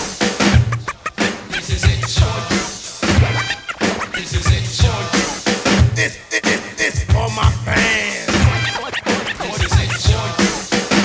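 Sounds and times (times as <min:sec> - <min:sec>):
drum beat: 0:00.0 - 0:11.0
turntable scratching: 0:00.0 - 0:11.0.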